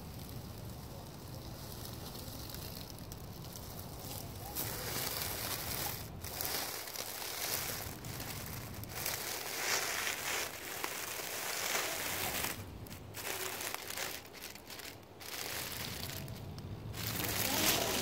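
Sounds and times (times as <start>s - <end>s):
dry leaves crunching under tyres: 0.0s - 18.0s.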